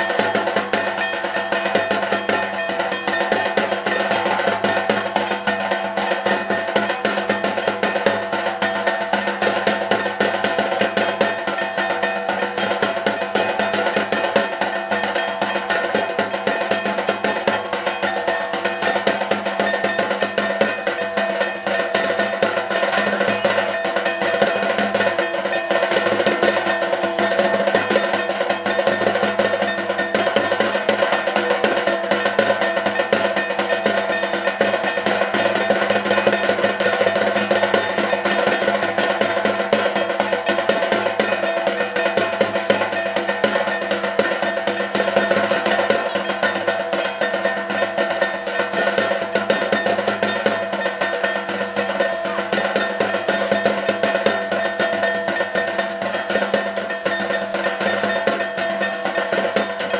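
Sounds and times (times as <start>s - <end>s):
fast rolling drumming: 0.0s - 59.9s.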